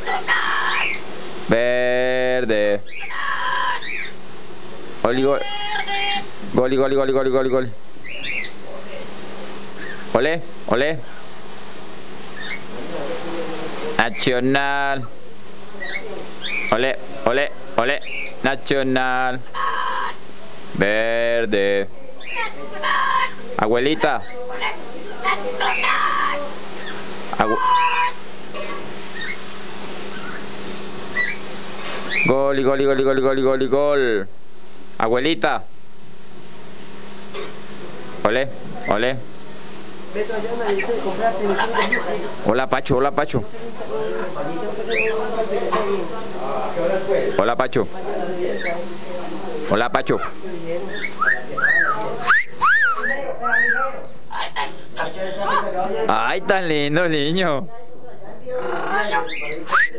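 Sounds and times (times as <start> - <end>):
parrot chirping and whistling: 0.0 - 1.0, 2.8 - 4.2, 5.4 - 6.2, 8.0 - 8.6, 9.8 - 10.1, 12.3 - 12.7, 15.8 - 16.8, 17.9 - 18.4, 26.8 - 29.5, 30.1 - 30.5, 31.1 - 32.3, 44.8 - 45.2, 48.5 - 48.8, 50.9 - 54.7, 58.7 - 59.9
parrot talking: 0.0 - 4.2, 5.1 - 8.9, 15.8 - 20.2, 22.1 - 29.4, 31.1 - 31.4, 38.8 - 39.2, 40.2 - 42.4, 43.8 - 46.4, 48.3 - 48.9, 50.0 - 56.6, 58.5 - 59.9
steady low hum: 0.0 - 59.9.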